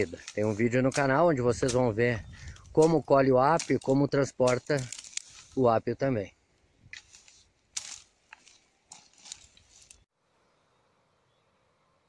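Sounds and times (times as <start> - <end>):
machete cutting through dry brush: 0.0 - 5.7, 6.8 - 10.1.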